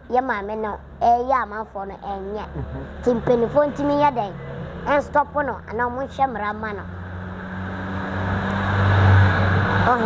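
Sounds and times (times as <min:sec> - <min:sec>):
vehicle passing by: 0:02.2 - 0:10.0.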